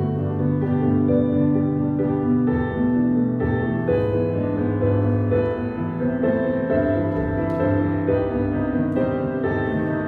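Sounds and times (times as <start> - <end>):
slow piano chords: 0.0 - 10.0.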